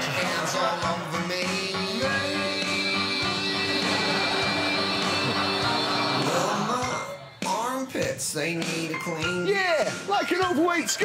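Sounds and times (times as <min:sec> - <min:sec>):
person singing comic song: 0:00.0 - 0:05.4.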